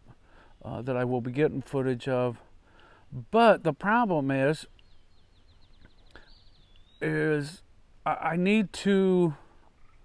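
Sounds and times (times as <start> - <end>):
faint bird trill: 4.6 - 7.6, 9.7 - 10.0.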